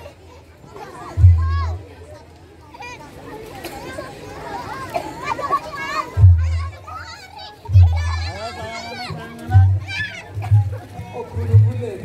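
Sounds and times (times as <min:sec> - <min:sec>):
children shouting and chattering: 0:00.0 - 0:12.0.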